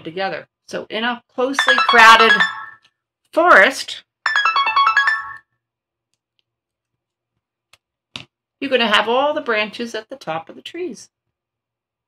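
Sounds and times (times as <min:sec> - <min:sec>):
melodic electronic chime: 0:01.6 - 0:02.8, 0:04.3 - 0:05.4.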